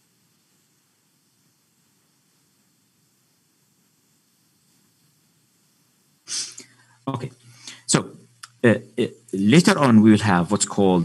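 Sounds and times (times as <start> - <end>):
sharp burst of breath: 6.3 - 7.9.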